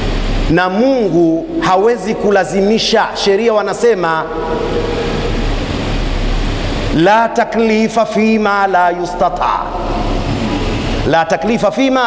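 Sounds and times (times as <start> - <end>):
rushing noise with deep rumble: 0.0 - 8.4, 9.0 - 11.2
speech: 0.5 - 4.5, 6.9 - 10.0, 11.0 - 12.0.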